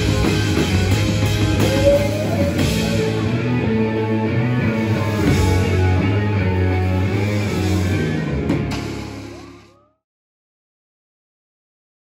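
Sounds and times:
drum kit: 0.0s - 9.7s
distorted electric guitars: 0.0s - 9.8s
bass guitar: 0.0s - 9.9s.

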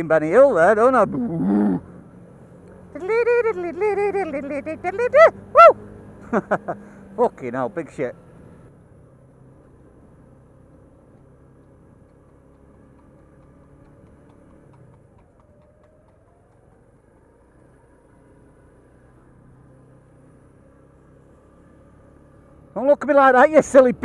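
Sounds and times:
muffled motorcycle engine hum: 0.0s - 24.0s.

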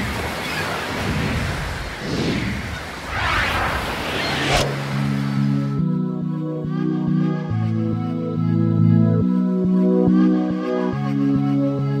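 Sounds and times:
rushing surf-like noise: 0.0s - 5.9s
calm synth music: 4.7s - 12.0s.

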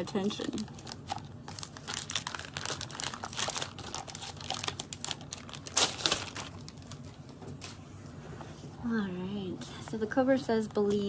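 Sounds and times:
plastic bag crinkling: 0.0s - 7.2s.

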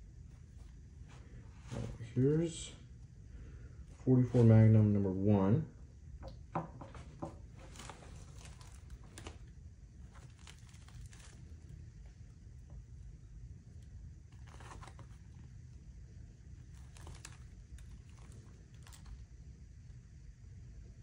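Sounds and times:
fabric rustling and crinkling: 0.2s - 2.3s, 7.0s - 12.7s, 13.8s - 15.6s, 16.5s - 19.3s.

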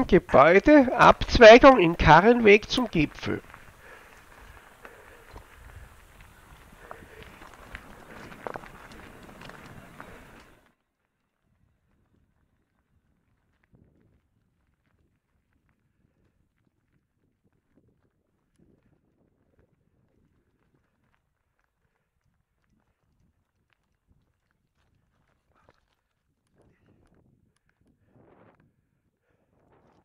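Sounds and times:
bike tyres crunching on gravel: 0.0s - 10.7s
wind on microphone: 3.4s - 10.6s.

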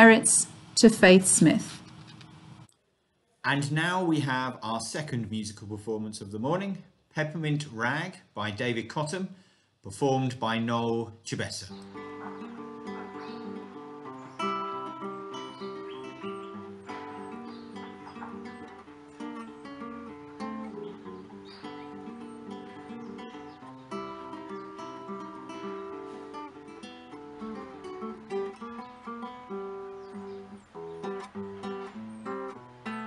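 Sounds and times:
solo acoustic guitar ragtime: 11.7s - 33.0s.

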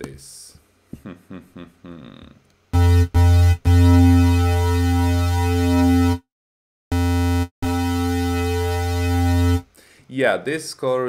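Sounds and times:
low distorted synth bass notes: 2.8s - 6.3s, 6.9s - 9.7s.

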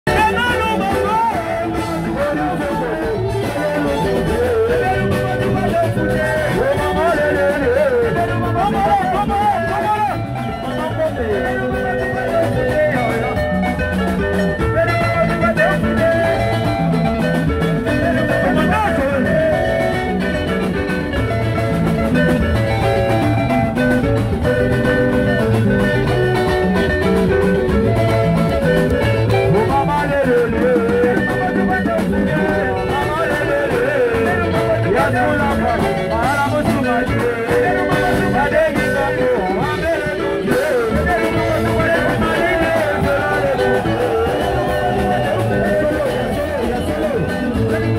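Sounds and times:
live band playing dance music: 0.0s - 47.9s.

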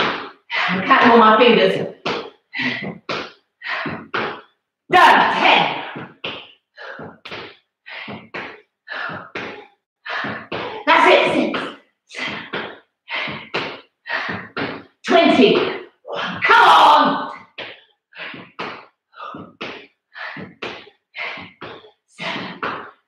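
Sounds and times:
hard effortful breaths: 2.2s - 4.5s, 6.8s - 10.9s, 11.6s - 15.0s, 17.4s - 23.0s.

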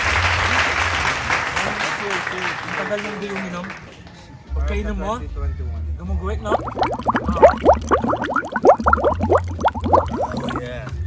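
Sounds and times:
people gulping drinks: 6.5s - 10.7s.

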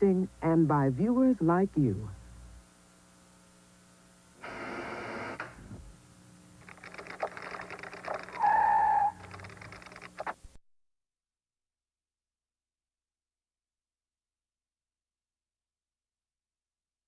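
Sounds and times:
faint hum: 0.0s - 10.6s
crackling clicks: 6.6s - 10.5s.

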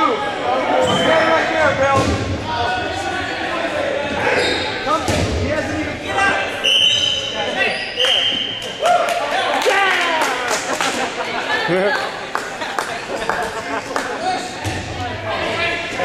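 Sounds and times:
players shouting and talking: 0.0s - 16.0s.

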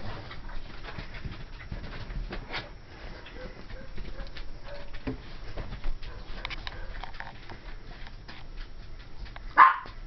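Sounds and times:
puppy barking: 9.6s - 10.0s.

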